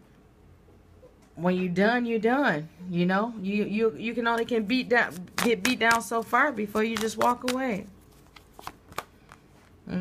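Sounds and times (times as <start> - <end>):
cards clicking and sliding: 5.0 - 9.5.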